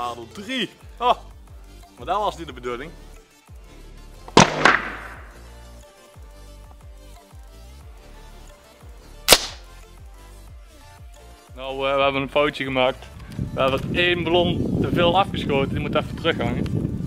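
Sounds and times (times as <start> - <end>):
background music: 0.0 - 17.0
air rifle cracks: 4.3 - 5.4, 9.3 - 9.7.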